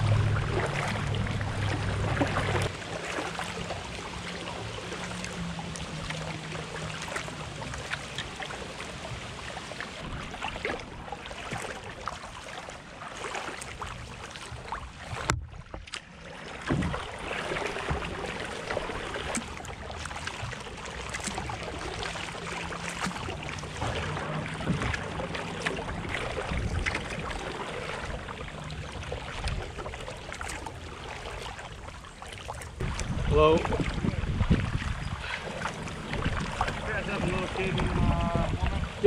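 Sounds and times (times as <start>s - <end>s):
paddle splashing and dripping: 0.0s - 39.0s
water rushing along hull: 0.0s - 39.0s.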